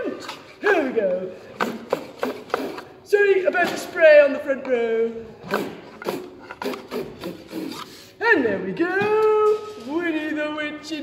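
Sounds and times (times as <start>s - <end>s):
handsaw sawing wood: 1.6s - 2.8s, 5.5s - 7.9s.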